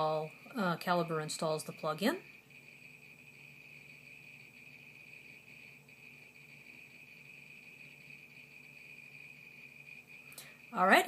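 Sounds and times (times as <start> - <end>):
faint high-pitched whine: 0.0 - 11.0
low hum: 0.0 - 11.0.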